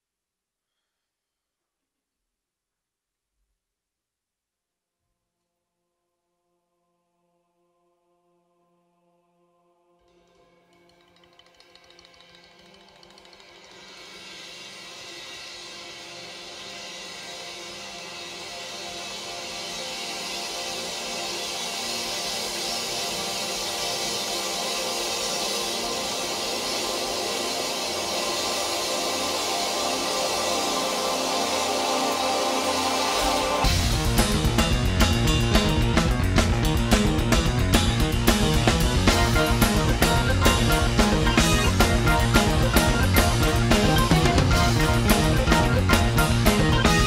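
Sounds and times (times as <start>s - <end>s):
brightening hiss: 11.6s - 34.5s
sustained electronic keyboard chord: 26.3s - 47.0s.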